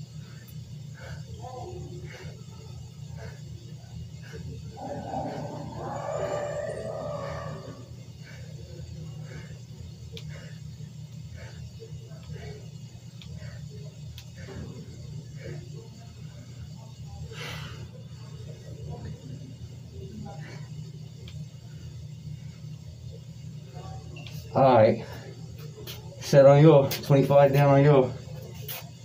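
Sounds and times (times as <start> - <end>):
steady low hum: 0.0 - 29.0
man exhaling rhythmically: 0.1 - 15.8
muffled background voices: 0.8 - 9.7, 10.6 - 27.4.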